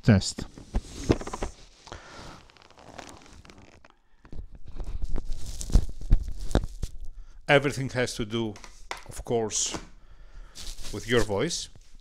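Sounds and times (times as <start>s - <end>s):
helmet handling rubbing and scraping: 0.5s - 3.9s, 10.6s - 12.0s.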